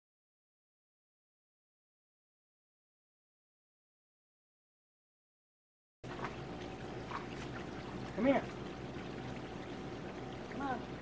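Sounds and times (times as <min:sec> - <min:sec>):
water pouring into bath tub: 0:06.0 - 0:11.0.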